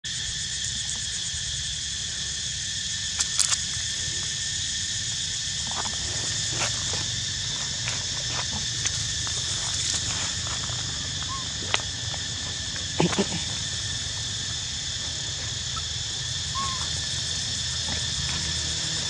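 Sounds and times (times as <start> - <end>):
insect chorus buzzing: 0.0 - 19.0.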